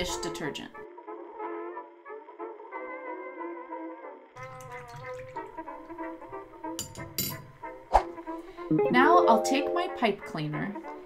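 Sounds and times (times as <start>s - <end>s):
instrumental music with wavering notes: 8.4s - 11.0s.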